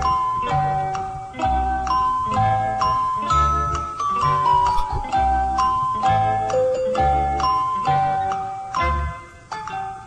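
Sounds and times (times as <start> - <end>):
bell-like mallet melody: 1.6 - 9.3.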